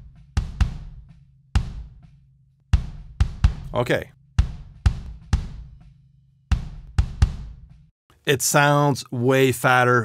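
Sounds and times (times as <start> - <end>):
kick drum hits: 0.0 - 2.1, 2.7 - 3.8, 4.4 - 5.9, 6.5 - 7.9.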